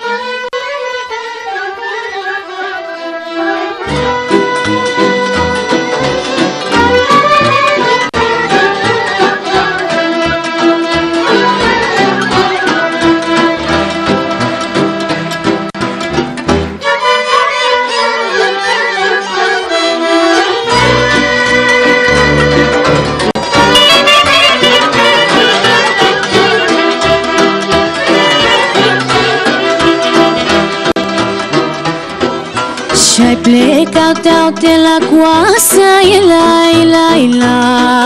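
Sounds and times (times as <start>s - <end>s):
violins playing slow melody: 0.0s - 15.2s
violins playing melody: 0.0s - 35.8s
folk orchestra playing: 0.0s - 38.0s
bass and rhythm accompaniment: 3.8s - 16.8s, 20.7s - 38.0s.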